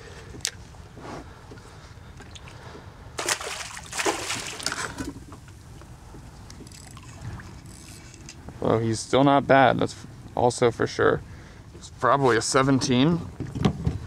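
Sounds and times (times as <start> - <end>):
water sloshing: 2.0 - 8.4
fish splashing: 3.2 - 5.0.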